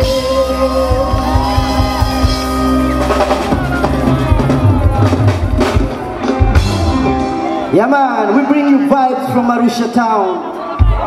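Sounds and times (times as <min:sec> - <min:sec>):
bass drum and cymbals beat: 0:00.0 - 0:07.5
live band playing: 0:00.0 - 0:11.0.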